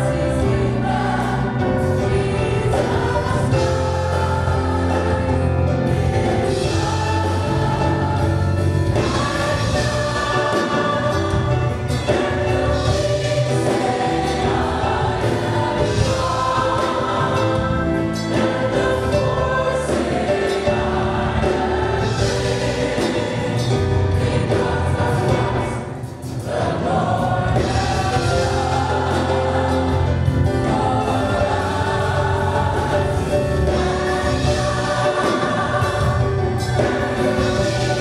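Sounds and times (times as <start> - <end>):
choir singing gospel song: 0.0 - 38.0
low musical accompaniment: 0.0 - 38.0.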